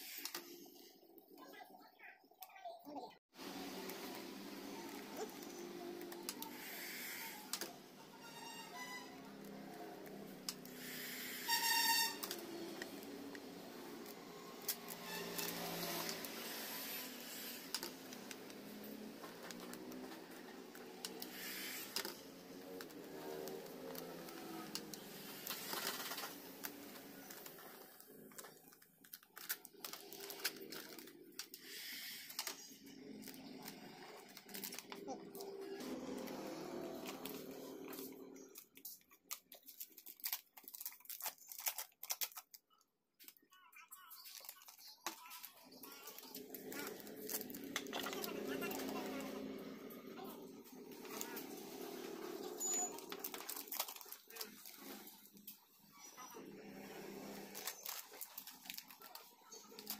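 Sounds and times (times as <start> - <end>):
plastic film crinkling: 3.6 - 49.6, 50.3 - 59.9
indistinct voices talking: 43.6 - 58.2.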